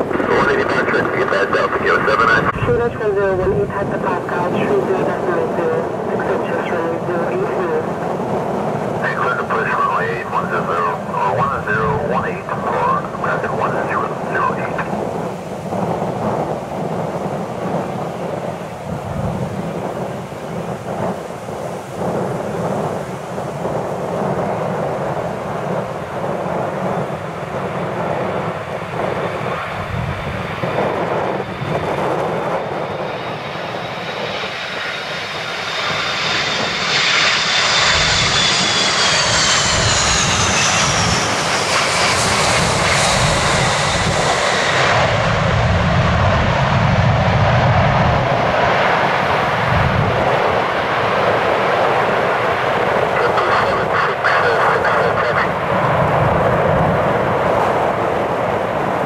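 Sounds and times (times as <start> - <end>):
deep jet engine rumble: 0.0 - 59.0
jet engine whine: 0.0 - 59.0
wind on microphone: 0.0 - 59.0.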